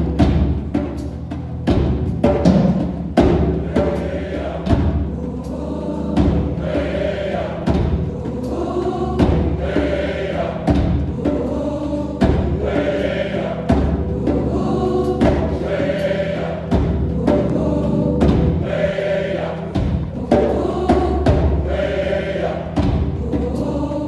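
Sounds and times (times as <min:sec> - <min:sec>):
deep drum beat: 0:00.0 - 0:23.8
gospel choir singing: 0:02.7 - 0:24.0.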